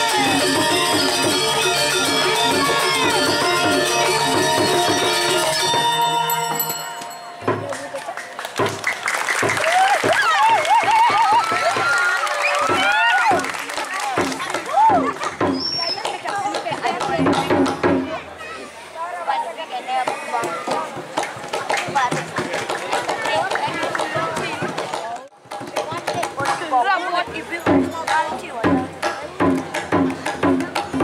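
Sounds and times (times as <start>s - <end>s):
drum beat: 0.0s - 18.2s, 20.5s - 31.0s
clashing cymbals or clapping: 6.3s - 17.9s
crowd shouting and whooping: 8.9s - 16.0s.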